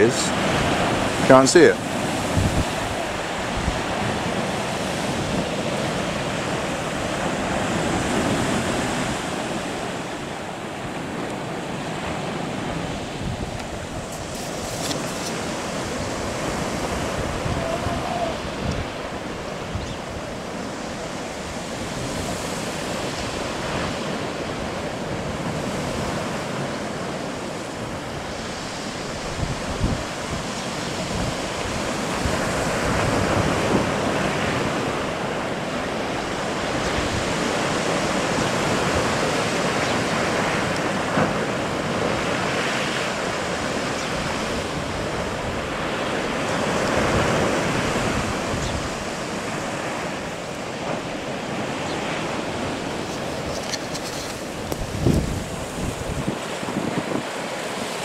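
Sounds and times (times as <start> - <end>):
surf breaking on beach: 0.0 - 58.0
wind buffeting microphone: 0.0 - 58.0.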